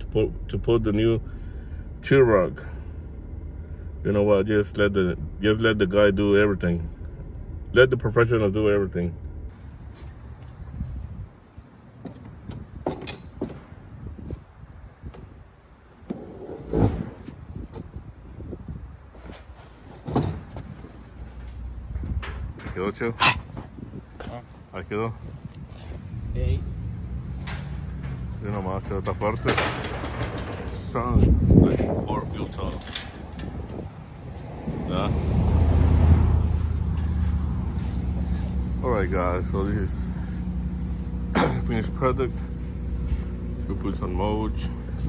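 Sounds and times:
vehicle engine idling hum: 0.0s - 11.8s, 20.6s - 45.0s
lawn equipment clattering on trailer: 27.3s - 34.5s.

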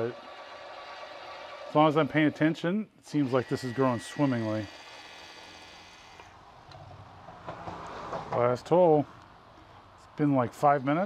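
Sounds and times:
high motor whine: 3.1s - 6.8s.

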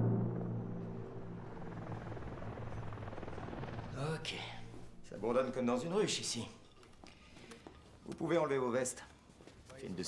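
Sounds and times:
helicopter drone: 0.0s - 5.0s.

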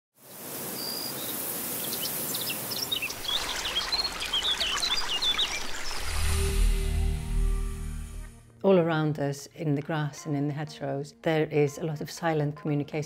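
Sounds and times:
steady hiss: 0.2s - 4.2s
small birds chirping: 0.3s - 6.3s.

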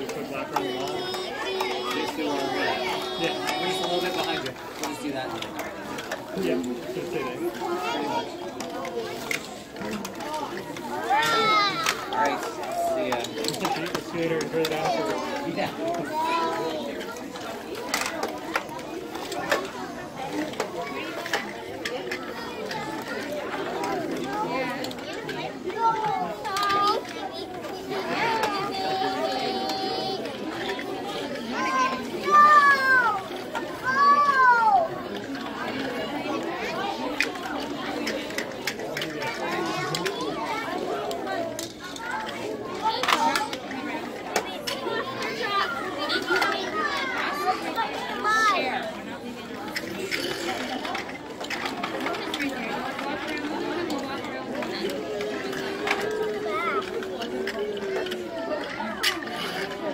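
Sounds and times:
children chattering: 0.0s - 59.9s
child's high voice: 0.8s - 3.7s, 31.4s - 35.0s.

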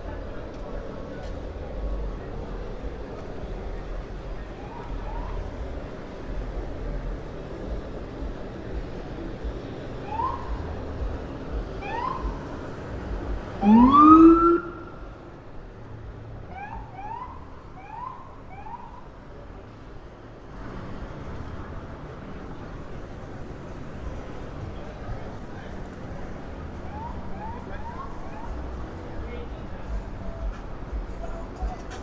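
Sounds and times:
street traffic: 0.0s - 32.0s
police siren chirps and whoops: 11.8s - 12.4s, 13.6s - 14.9s.

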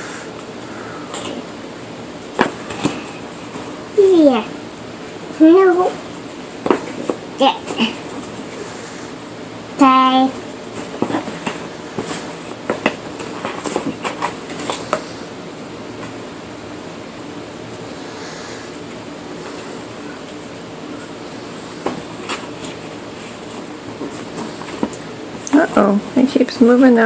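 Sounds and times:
low room hum: 0.0s - 27.0s.

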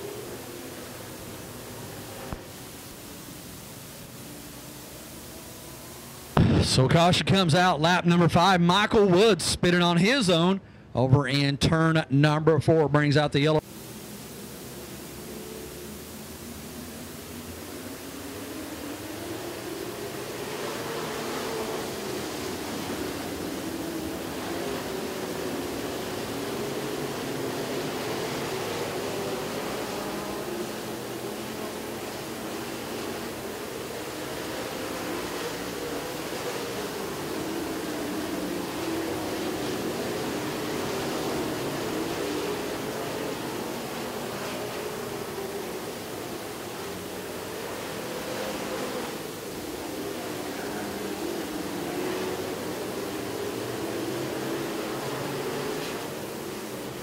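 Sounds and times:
stock car engines racing: 0.0s - 3.2s, 4.0s - 57.0s.

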